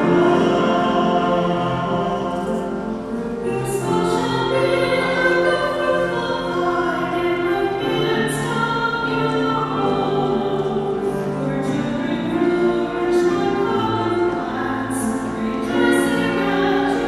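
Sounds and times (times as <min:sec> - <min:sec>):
piano: 0:00.0 - 0:17.0
woman singing a hymn: 0:03.4 - 0:17.0.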